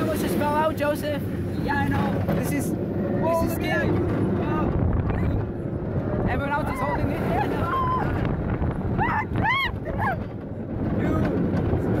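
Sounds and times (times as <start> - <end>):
roller coaster rumble: 0.0 - 12.0
wind on microphone: 1.4 - 12.0.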